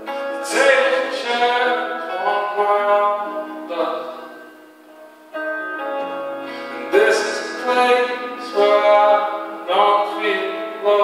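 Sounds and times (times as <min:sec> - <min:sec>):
acoustic guitar: 0:00.0 - 0:11.0
man singing: 0:00.2 - 0:04.4, 0:06.8 - 0:11.0.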